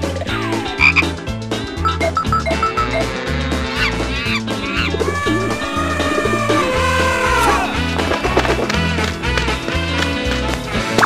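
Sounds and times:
cartoon music with bass beat: 0.3s - 9.9s
short falling glide: 4.7s - 8.7s.

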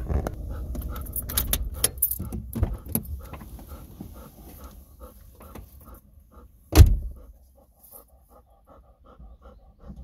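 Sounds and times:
dog panting quickly: 0.4s - 10.0s.

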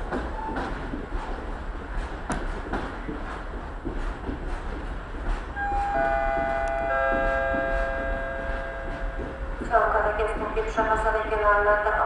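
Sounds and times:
electric train approaching: 5.2s - 11.1s.

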